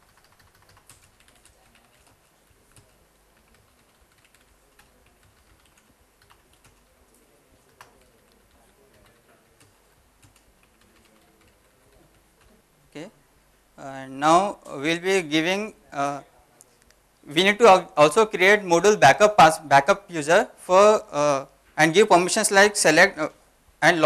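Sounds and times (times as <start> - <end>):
typing on computer keyboard: 0.0 - 6.9, 7.6 - 12.5.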